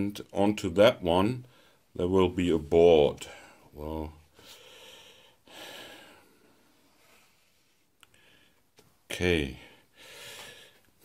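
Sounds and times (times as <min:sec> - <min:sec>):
person breathing softly: 0:03.2 - 0:08.7, 0:09.6 - 0:11.0.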